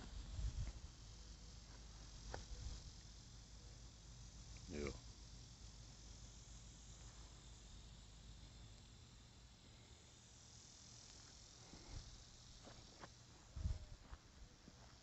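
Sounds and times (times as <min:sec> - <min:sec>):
insects buzzing: 0:00.0 - 0:15.0.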